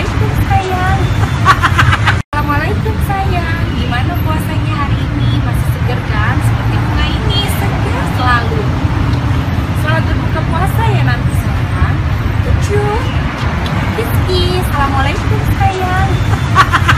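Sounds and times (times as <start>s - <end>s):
woman talking: 0.0s - 1.1s, 2.4s - 8.8s, 9.8s - 13.2s, 13.9s - 16.2s
city traffic rumble: 0.0s - 16.9s.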